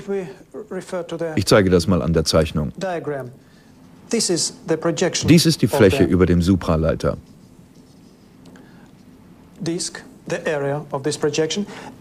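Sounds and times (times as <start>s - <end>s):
person speaking: 0.0s - 8.2s
marker scratching on transparency: 5.8s - 8.4s.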